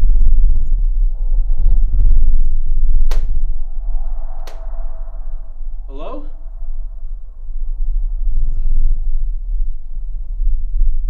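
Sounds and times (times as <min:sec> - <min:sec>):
low fluttering rumbling drone: 0:00.0 - 0:11.0
hand clap: 0:03.1 - 0:03.3.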